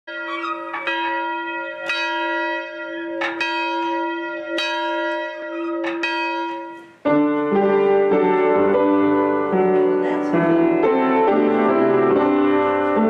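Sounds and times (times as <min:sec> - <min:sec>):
church bell ringing: 0:00.1 - 0:13.0.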